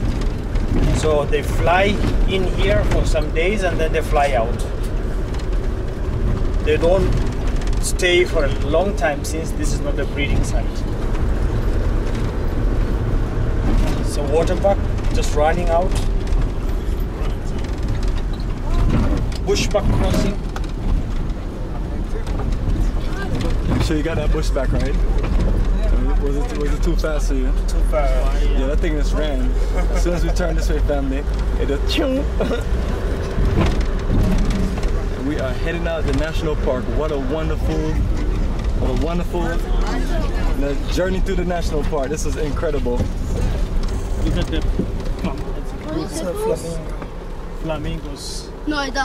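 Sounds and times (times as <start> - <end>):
rattling and crunching of gravel: 0.0 - 45.8
vehicle engine and road rumble: 0.0 - 49.0.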